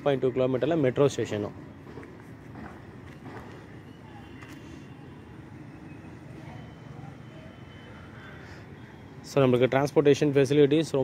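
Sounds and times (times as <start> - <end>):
steady low street rumble: 0.0 - 11.0.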